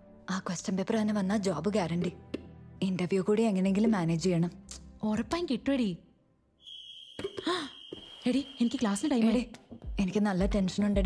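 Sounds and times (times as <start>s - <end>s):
high-pitched whistle-like tone: 6.6s - 9.2s.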